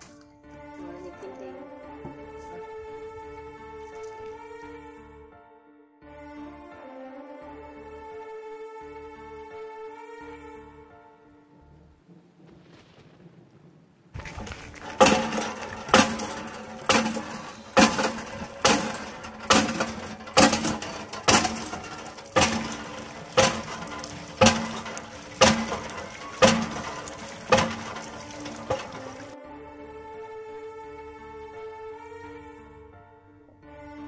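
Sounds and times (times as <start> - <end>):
hand pump metallic clank: 14.2 - 29.4
water gushing from spout: 14.2 - 29.4.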